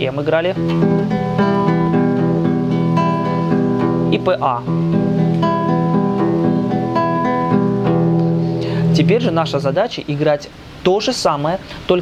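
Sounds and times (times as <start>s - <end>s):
classical guitar plucking: 0.5s - 10.0s.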